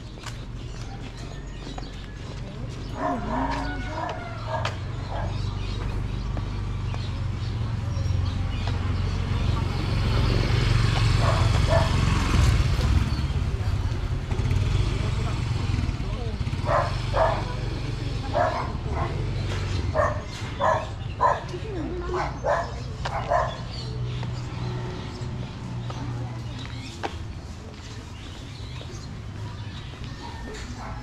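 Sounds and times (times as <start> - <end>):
low rumble of street traffic: 0.0 - 31.0
motorcycle engine passing: 2.8 - 21.6
dog barking: 3.0 - 5.5, 11.2 - 12.1, 16.6 - 19.3, 19.9 - 23.7.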